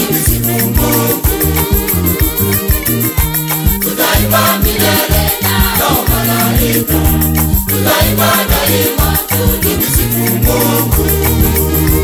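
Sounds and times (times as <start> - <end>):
bass line: 0.0 - 12.0
choir singing: 0.0 - 12.0
fast high percussion beat: 0.0 - 12.0.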